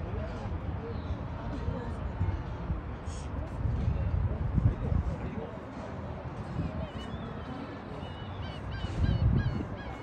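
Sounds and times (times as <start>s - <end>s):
gulls squawking: 8.0s - 10.0s.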